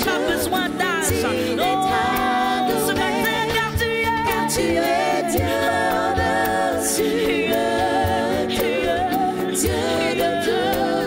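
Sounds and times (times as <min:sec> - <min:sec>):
voices singing along: 0:00.0 - 0:11.0
woman singing lead: 0:00.0 - 0:11.0.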